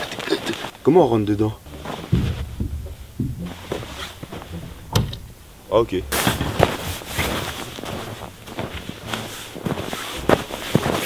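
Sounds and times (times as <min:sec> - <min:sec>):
soft knocks on plastic door: 0:02.1 - 0:05.3.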